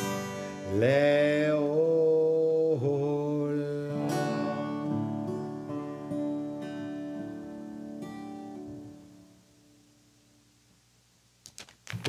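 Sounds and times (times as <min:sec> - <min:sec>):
acoustic guitar: 0:00.0 - 0:10.4
man singing a slow chant: 0:00.6 - 0:05.4.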